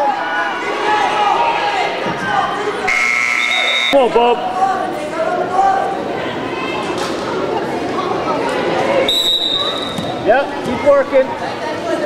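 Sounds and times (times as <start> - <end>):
voices echoing in gym: 0.0 - 12.0
high-pitched whistle: 2.9 - 4.0, 9.1 - 10.0.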